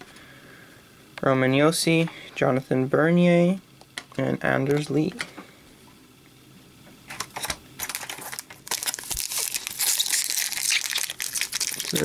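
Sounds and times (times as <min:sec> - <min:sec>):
foil wrapper crinkling: 0:07.8 - 0:12.0.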